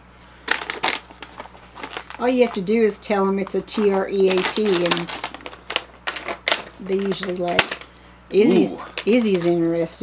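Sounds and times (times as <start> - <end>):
plastic pouch crinkling: 0.4 - 2.8, 3.4 - 7.9.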